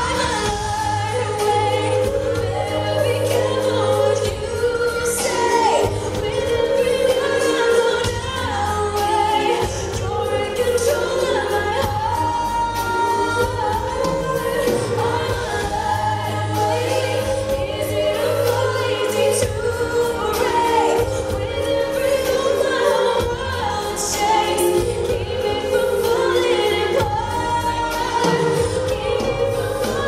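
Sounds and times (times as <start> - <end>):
band accompaniment: 0.0 - 30.0
woman singing pop ballad: 0.0 - 30.0.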